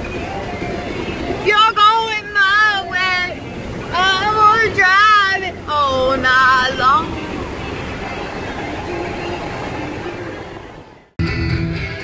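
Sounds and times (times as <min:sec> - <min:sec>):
road and wind noise in car: 0:00.0 - 0:12.0.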